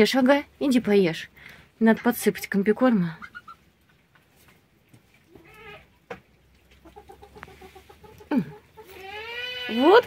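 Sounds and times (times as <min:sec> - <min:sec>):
hens clucking: 0:01.9 - 0:10.0
hen squawk: 0:05.3 - 0:05.9.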